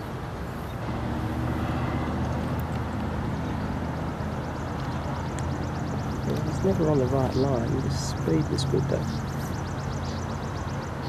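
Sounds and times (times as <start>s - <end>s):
vehicle engine running: 0.7s - 11.0s.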